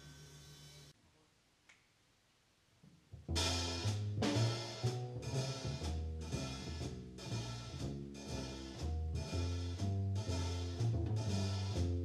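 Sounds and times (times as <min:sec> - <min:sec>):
small jazz combo: 0:03.1 - 0:12.0
drums keeping time: 0:03.2 - 0:12.0
low bass line: 0:03.2 - 0:12.0.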